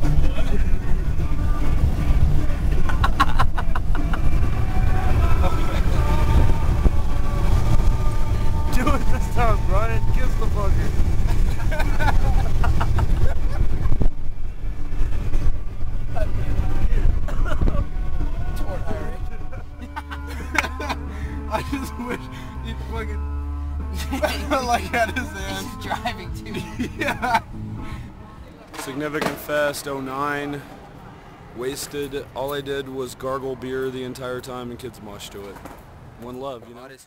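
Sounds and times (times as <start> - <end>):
people talking: 0.0 - 30.7, 31.6 - 35.6, 36.2 - 37.0
road and engine rumble: 0.0 - 36.9.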